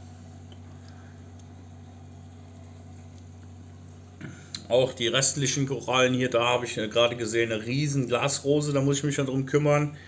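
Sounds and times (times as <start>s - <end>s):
aquarium pumps humming: 0.0s - 10.0s.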